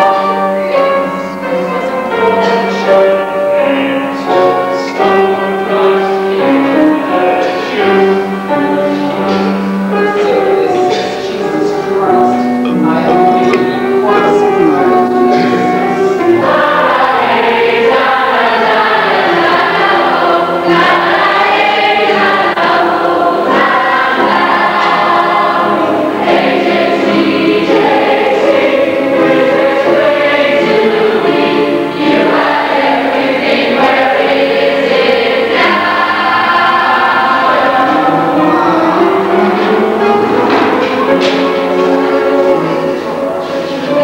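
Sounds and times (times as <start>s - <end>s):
chorus of teenage voices singing: 0.0s - 44.0s.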